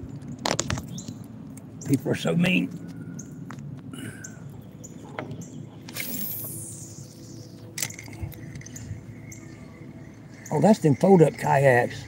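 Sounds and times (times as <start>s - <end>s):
brief swish: 5.9s - 6.8s.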